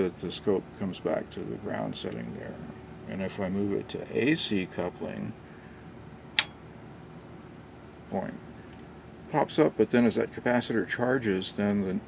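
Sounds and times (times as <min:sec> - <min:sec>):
switch click: 0:06.4 - 0:06.6.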